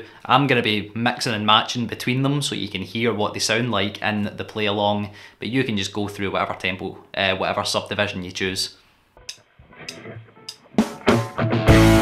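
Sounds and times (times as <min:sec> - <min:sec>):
band playing: 0:09.8 - 0:12.0.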